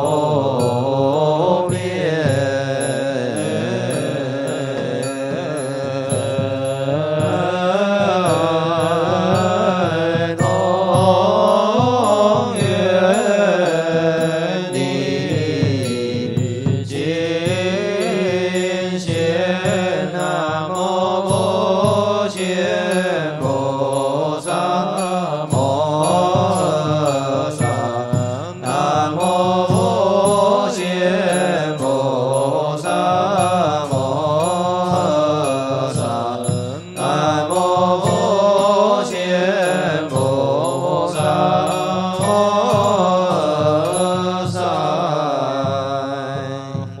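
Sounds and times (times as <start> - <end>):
group chanting slow melody: 0.0 - 47.0
steady knocking beat: 0.0 - 47.0.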